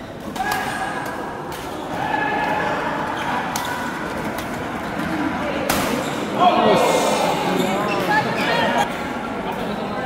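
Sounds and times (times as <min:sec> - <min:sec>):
people shouting in hall: 0:00.3 - 0:04.0.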